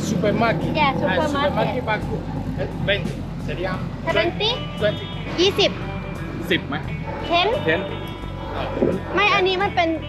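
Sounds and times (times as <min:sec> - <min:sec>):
street traffic rumble: 0:00.0 - 0:10.0
voices talking: 0:00.0 - 0:10.0.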